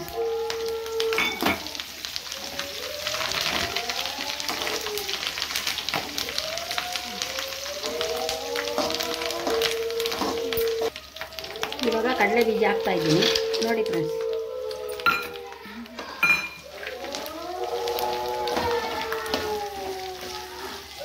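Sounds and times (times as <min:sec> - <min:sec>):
food sizzling in hot oil: 0:00.0 - 0:21.0.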